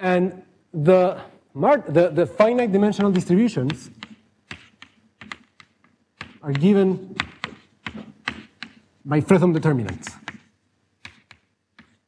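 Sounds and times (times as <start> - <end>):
chalk tapping on blackboard: 2.4 - 8.9, 9.8 - 12.0.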